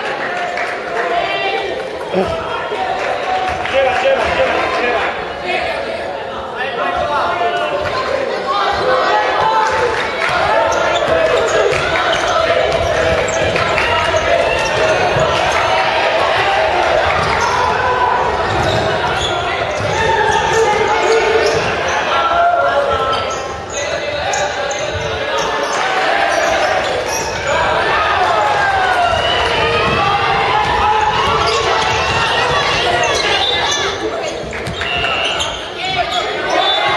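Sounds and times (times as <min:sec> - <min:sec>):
players shouting: 0:00.0 - 0:36.9.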